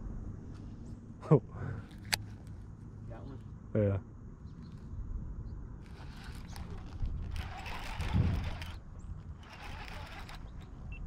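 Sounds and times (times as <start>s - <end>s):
fishing reel gears whirring: 5.8s - 10.9s.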